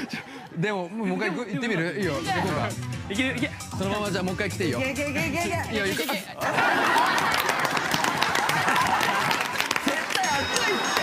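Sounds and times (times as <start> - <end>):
people laughing and shouting: 0.0 - 2.8, 6.1 - 11.0
clapping: 7.0 - 11.0.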